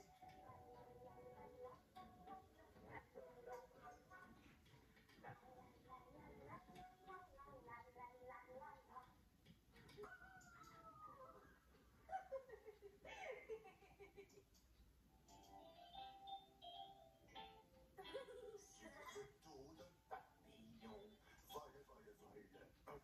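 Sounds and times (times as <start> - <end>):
faint television music with voices: 0.0 - 23.0.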